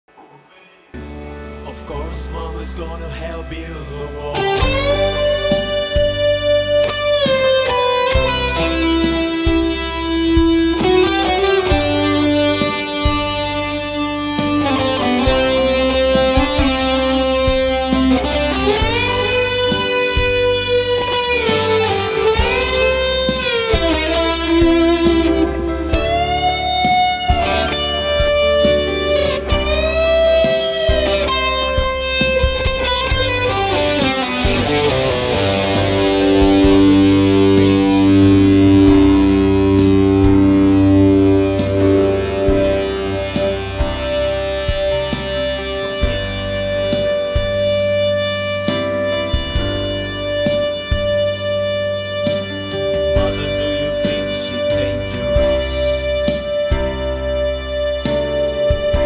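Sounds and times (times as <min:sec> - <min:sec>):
bass line: 0:01.0 - 0:59.0
electric guitar lead solo: 0:04.3 - 0:59.0.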